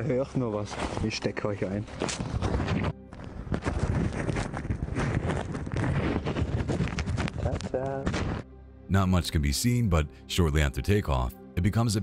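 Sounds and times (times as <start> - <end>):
fabric rustling on microphone: 0.5 - 8.4
man's voice: 8.9 - 12.0.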